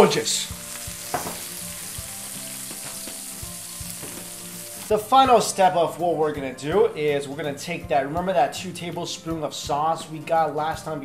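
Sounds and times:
roast pork sizzling: 0:00.0 - 0:07.3.

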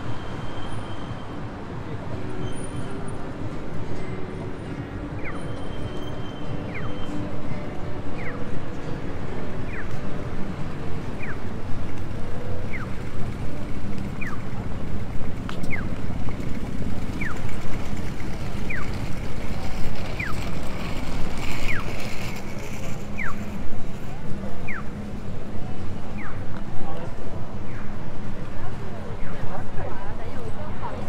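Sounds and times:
street and traffic rumble: 0:00.0 - 0:31.0
pedestrian crossing signal chirping: 0:11.0 - 0:14.7, 0:15.5 - 0:16.2, 0:17.0 - 0:17.6, 0:24.6 - 0:25.0.

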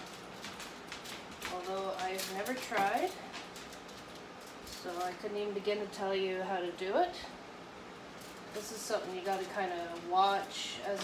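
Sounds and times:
woman talking: 0:01.5 - 0:03.3, 0:04.8 - 0:07.4, 0:08.5 - 0:11.0
metal tongs scraping baking sheet: 0:08.2 - 0:11.0.

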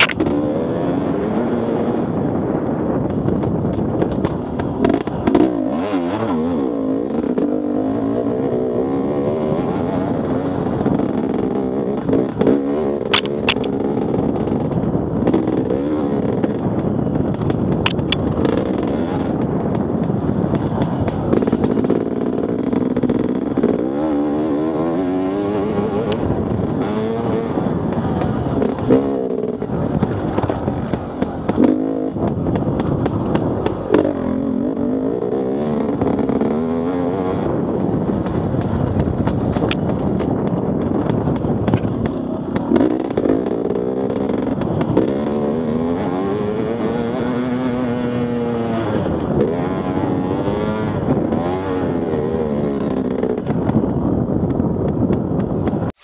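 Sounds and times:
sharp clicks: 0:00.0 - 0:00.4, 0:13.0 - 0:13.8, 0:17.3 - 0:18.7
dirt bike engine revving: 0:00.0 - 0:54.4.

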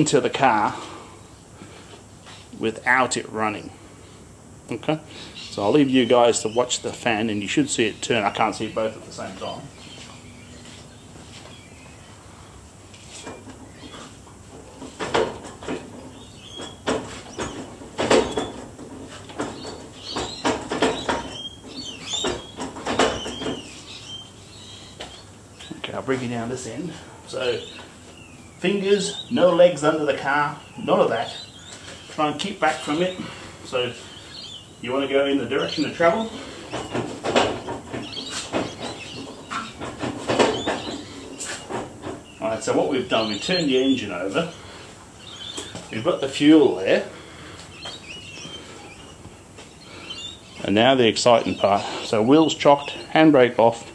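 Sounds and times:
engine clunks and knocks: 0:13.3 - 0:23.7, 0:36.0 - 0:42.4.

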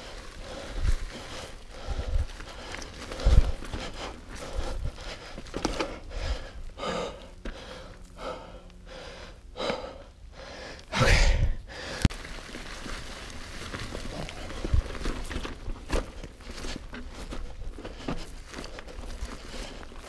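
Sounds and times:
bike tyres crunching through leaves: 0:00.0 - 0:09.2, 0:11.7 - 0:20.0
rider breathing hard: 0:00.0 - 0:12.1, 0:13.7 - 0:20.0
bike thumping over bumps: 0:03.0 - 0:06.5.

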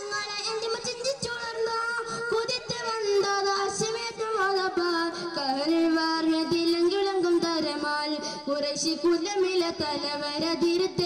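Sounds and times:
boy singing into microphone: 0:00.0 - 0:11.0.

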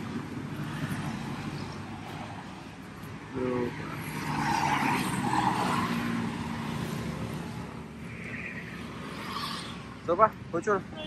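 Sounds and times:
highway traffic passing: 0:00.0 - 0:11.0.

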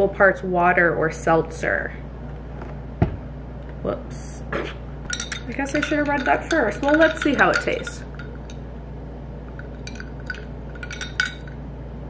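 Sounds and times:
ice and straw clinking in glass: 0:05.1 - 0:08.6, 0:09.5 - 0:11.6.

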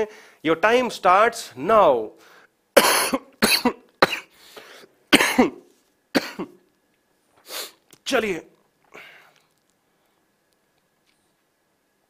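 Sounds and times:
man coughing: 0:02.8 - 0:04.4, 0:05.1 - 0:06.6.

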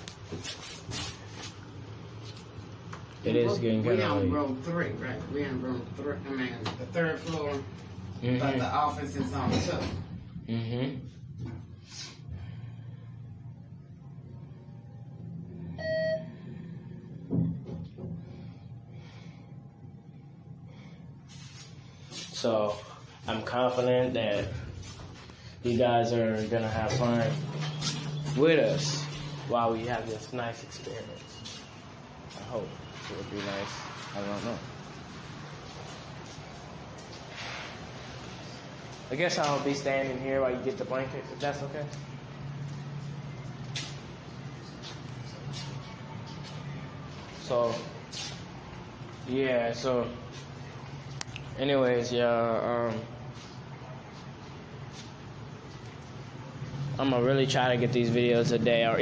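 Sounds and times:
steady low hum: 0:00.0 - 0:33.1
elevator chime beep: 0:15.8 - 0:16.4.

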